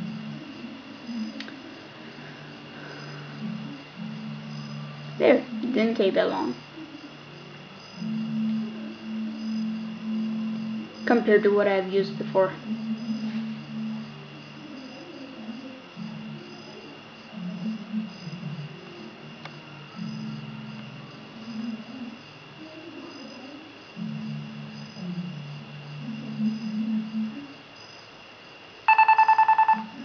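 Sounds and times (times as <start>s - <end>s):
faint low background sounds: 0.0s - 30.0s
smartphone ringer warbling: 28.9s - 30.0s.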